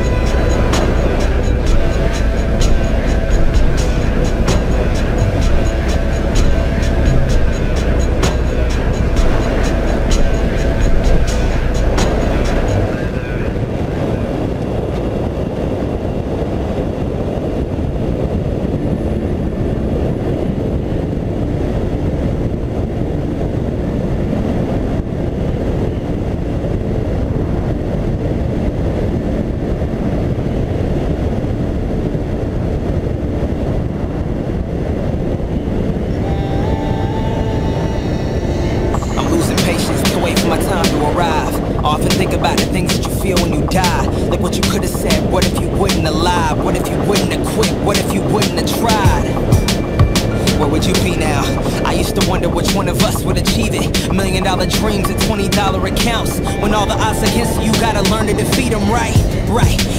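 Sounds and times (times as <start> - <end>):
music: 0.0 - 13.7, 36.6 - 59.9
motorcycle engine cruising: 0.0 - 15.0
wind on microphone: 0.0 - 59.9.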